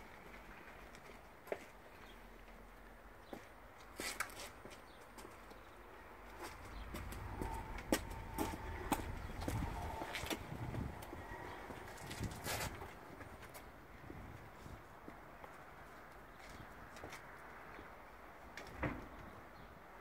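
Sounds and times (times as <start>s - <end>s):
footsteps on paving stones: 3.2s - 5.7s, 6.3s - 17.3s
low rumble: 6.5s - 11.9s.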